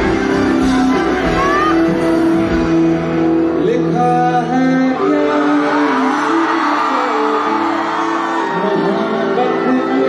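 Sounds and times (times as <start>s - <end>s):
live band music: 0.0s - 6.6s.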